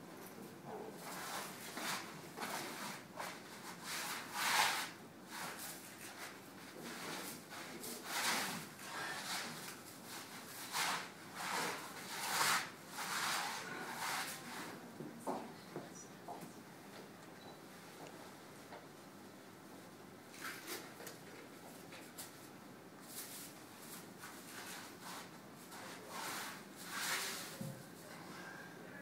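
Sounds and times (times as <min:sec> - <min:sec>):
paint rubbing strokes: 0:23.1 - 0:28.1.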